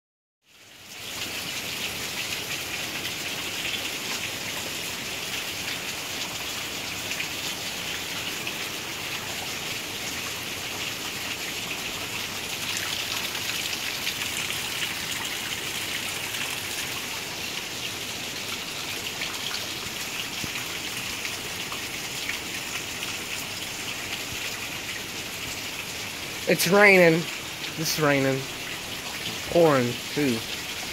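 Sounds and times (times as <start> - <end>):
heavy rain on pavement: 0.5 - 30.9.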